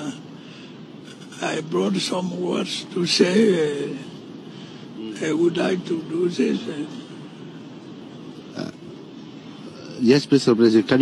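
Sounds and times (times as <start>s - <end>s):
background hiss: 0.0s - 11.0s
man saying uh: 5.0s - 7.0s.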